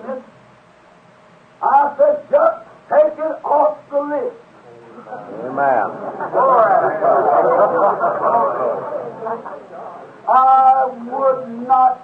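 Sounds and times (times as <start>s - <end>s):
man speaking loudly: 1.6s - 4.4s, 10.2s - 12.0s.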